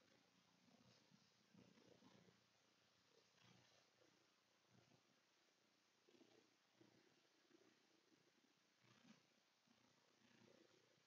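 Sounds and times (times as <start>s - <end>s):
soft low sounds: 0.0s - 11.0s.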